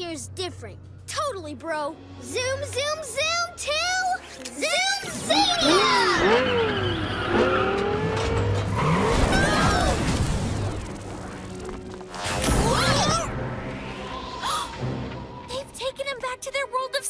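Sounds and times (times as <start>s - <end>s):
background music: 0.0s - 17.0s
engines revving: 5.1s - 12.2s.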